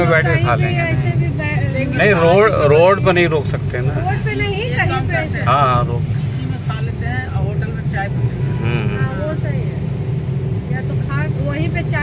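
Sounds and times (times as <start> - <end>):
voices talking: 0.0 - 9.8
car road and engine rumble: 0.0 - 12.0.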